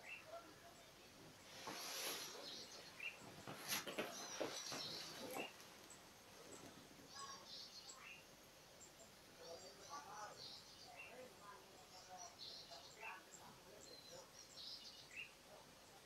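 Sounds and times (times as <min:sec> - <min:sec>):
faint small bird chirps: 0:00.0 - 0:16.0
soft breath: 0:01.4 - 0:02.8
rustling on beanbag cushion: 0:01.5 - 0:02.6, 0:03.3 - 0:05.7.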